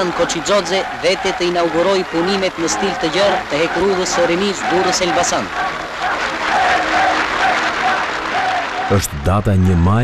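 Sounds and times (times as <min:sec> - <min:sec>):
crowd applauding: 0:00.0 - 0:09.2
voices in crowd: 0:00.0 - 0:10.0.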